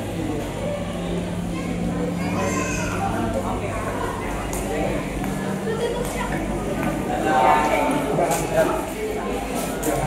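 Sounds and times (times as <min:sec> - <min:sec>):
crowd chatter indoors: 0:00.0 - 0:10.0.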